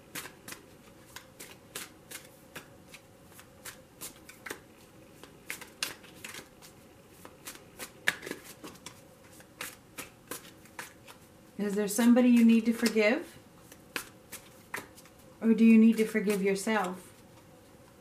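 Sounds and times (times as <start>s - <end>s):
cards being shuffled: 0.1s - 13.0s, 13.6s - 15.2s.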